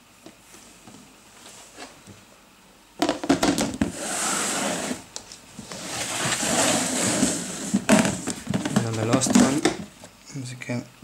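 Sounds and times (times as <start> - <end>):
plastic tub scraping and rattling: 5.8 - 9.9.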